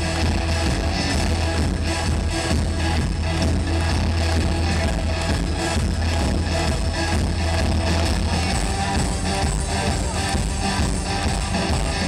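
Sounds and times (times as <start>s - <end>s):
live rock band over loudspeakers: 0.0s - 12.0s.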